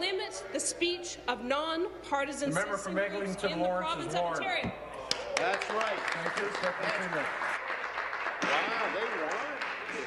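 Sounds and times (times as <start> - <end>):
people applauding: 5.1 - 10.0.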